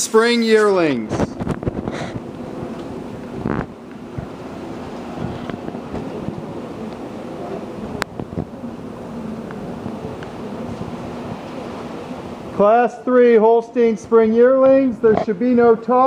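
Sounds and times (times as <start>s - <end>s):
ventilation fans humming: 0.0s - 16.0s.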